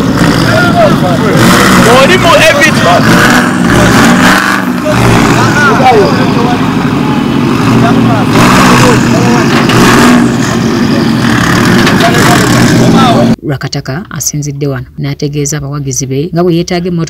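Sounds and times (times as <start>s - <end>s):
car engine running: 0.0s - 13.4s
people talking: 0.4s - 6.8s, 7.6s - 9.7s, 11.8s - 17.0s.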